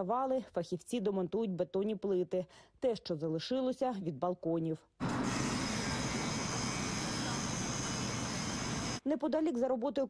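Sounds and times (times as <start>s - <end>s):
heavy machinery engine drone: 5.0s - 9.0s.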